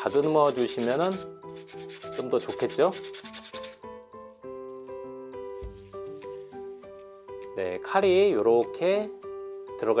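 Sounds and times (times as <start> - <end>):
sandpaper rubbing on wood: 0.0 - 3.8
background music: 0.0 - 10.0.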